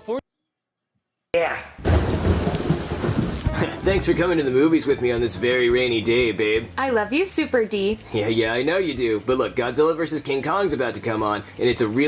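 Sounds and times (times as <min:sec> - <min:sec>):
heavy rain: 0:01.8 - 0:04.5
low rumble of thunder: 0:01.9 - 0:03.7.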